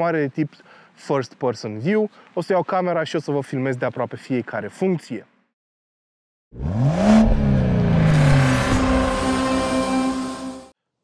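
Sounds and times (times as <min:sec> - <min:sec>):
car engine revving: 0:06.6 - 0:10.7
held synth chord: 0:07.8 - 0:10.7.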